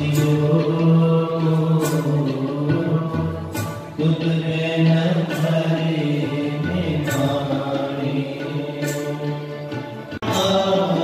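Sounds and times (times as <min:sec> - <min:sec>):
devotional chanting: 0:00.0 - 0:11.0.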